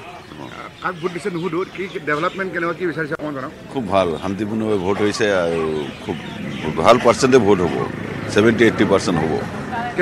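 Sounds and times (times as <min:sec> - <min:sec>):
quiet talk: 0:00.0 - 0:10.0.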